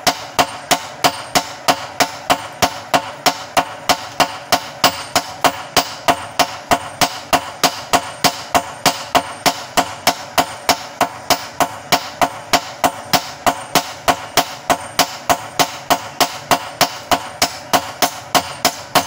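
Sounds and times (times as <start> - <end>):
hammer striking steel on anvil: 0.0 - 19.0.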